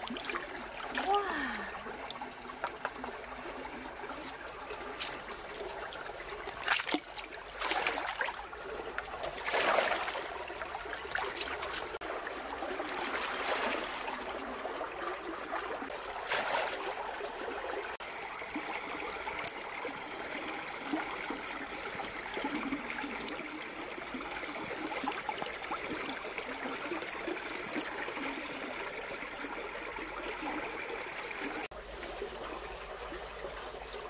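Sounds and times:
stream water running: 0.0 - 34.0
wading in rubber boots: 2.6 - 12.0, 15.5 - 17.2.

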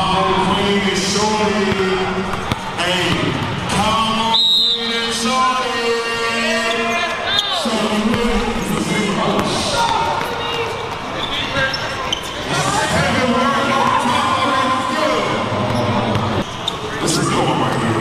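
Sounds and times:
spectators chatter: 0.0 - 18.0.

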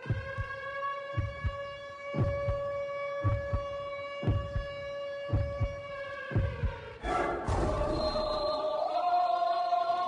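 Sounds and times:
heartbeat sound effect: 0.0 - 0.6, 1.2 - 1.6, 2.2 - 5.8, 6.4 - 8.2
low thumps: 2.2 - 5.8.

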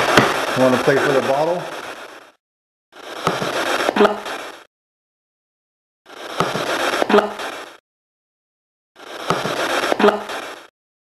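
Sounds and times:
recorder hiss: 0.0 - 2.4, 3.0 - 4.7, 6.1 - 7.8, 9.0 - 10.7
knock: 0.1 - 0.4.

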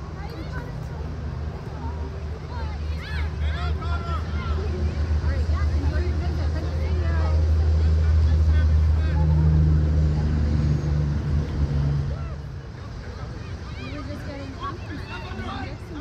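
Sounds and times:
distant shouting voices: 1.7 - 16.0.

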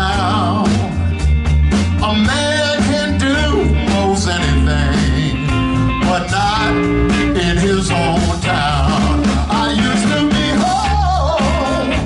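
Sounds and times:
blues band playing: 0.0 - 12.0
amplified blues harmonica: 2.0 - 12.0.

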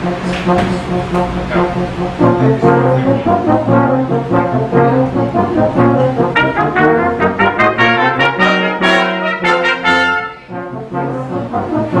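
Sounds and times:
brass quintet playing classical piece: 0.0 - 12.0.

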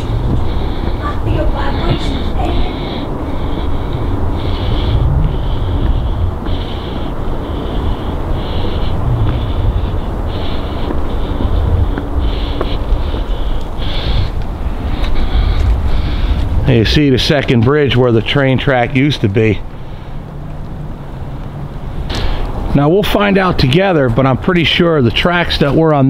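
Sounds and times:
footsteps crunching on gravel: 0.0 - 17.8
wind rumbling on microphone: 0.0 - 24.7.

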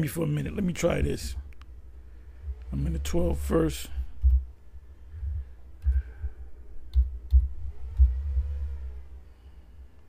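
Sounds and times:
dull low thud: 4.1 - 4.5
keyboard and mouse clicks: 4.2 - 4.5, 6.8 - 8.2.

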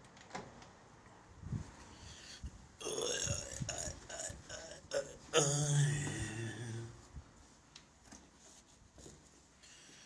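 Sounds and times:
man burping: 2.8 - 6.9
wavering vocal sound: 2.8 - 7.1.

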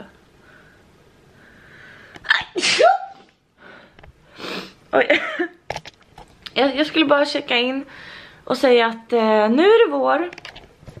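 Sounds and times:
woman sneezing: 2.2 - 3.3.

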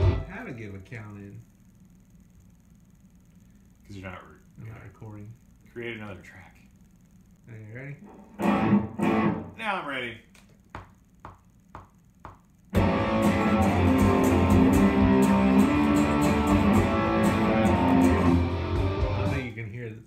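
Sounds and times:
electric guitar chords: 0.0 - 0.3, 8.4 - 9.5, 12.7 - 19.5.

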